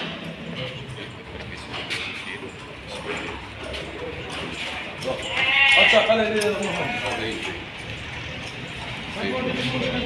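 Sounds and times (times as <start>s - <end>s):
sheep bleating: 5.2s - 7.5s.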